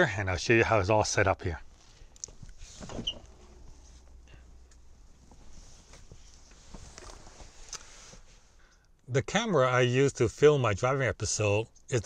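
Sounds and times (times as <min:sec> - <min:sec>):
low steady hiss: 0:00.0 - 0:12.0
light handling clicks and rustles: 0:01.7 - 0:09.0.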